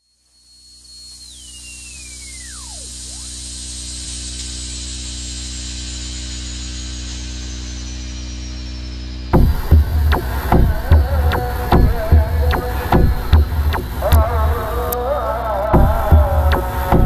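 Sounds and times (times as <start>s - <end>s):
high whine falling in pitch: 0.2s - 17.0s
high tone slowly sinking: 0.6s - 5.2s
synthesizer drone: 1.4s - 5.1s, 9.1s - 17.0s.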